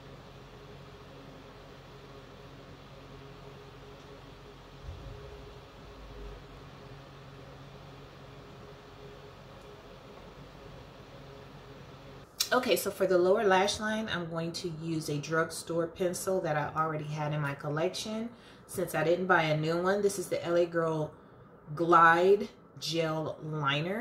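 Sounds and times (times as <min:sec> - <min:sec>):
low hum: 0:00.0 - 0:12.3
soft low bump: 0:04.8 - 0:06.4.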